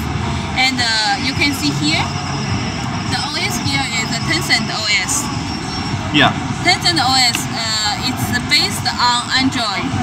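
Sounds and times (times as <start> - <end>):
background voices chattering: 0.0 - 10.0
trade show hall hum: 0.0 - 10.0.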